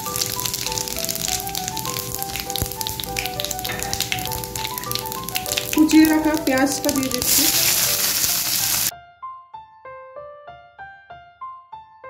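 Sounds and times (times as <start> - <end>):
spices sizzling in hot oil: 0.0 - 8.9
slow background music: 0.0 - 11.6.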